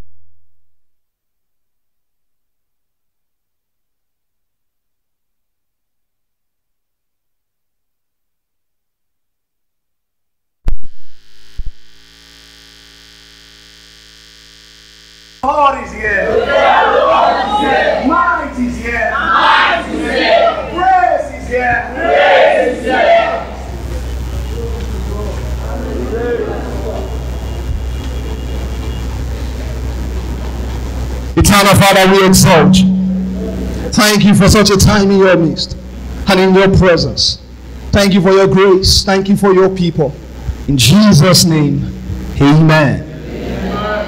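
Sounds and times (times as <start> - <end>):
electrical mains hum: 11.0 - 44.0
crowd voices: 15.4 - 37.0, 40.1 - 44.0.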